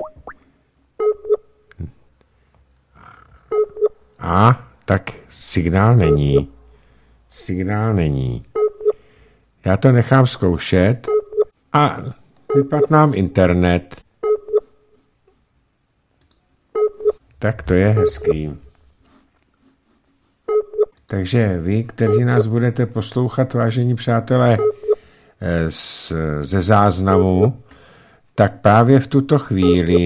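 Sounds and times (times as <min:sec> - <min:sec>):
electronic telephone beeps: 0:00.0 - 0:00.3, 0:01.0 - 0:01.4, 0:20.5 - 0:20.9, 0:24.6 - 0:25.0
rising electronic blips: 0:00.0 - 0:00.4, 0:17.2 - 0:18.9
short bursts of beeping tone: 0:00.0 - 0:00.4, 0:16.8 - 0:18.6.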